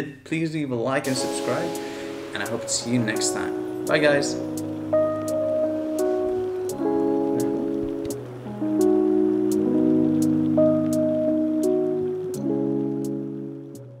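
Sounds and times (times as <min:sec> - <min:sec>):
sustained music chords: 0:01.1 - 0:14.0
light ticking: 0:01.7 - 0:13.9.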